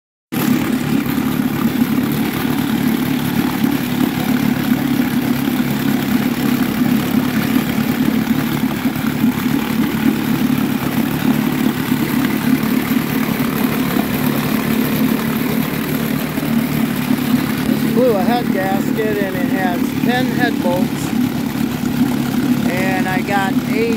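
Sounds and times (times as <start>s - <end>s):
outboard motor running: 0.3s - 23.9s
water churning: 0.3s - 23.9s.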